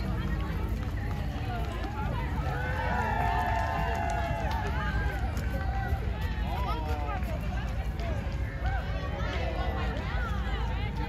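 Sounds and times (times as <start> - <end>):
people chattering outdoors: 0.0 - 11.0.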